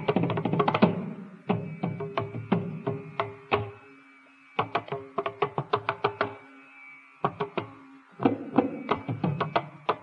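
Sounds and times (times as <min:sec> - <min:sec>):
hand drum strokes: 0:00.0 - 0:03.9, 0:04.6 - 0:06.6, 0:07.2 - 0:10.0.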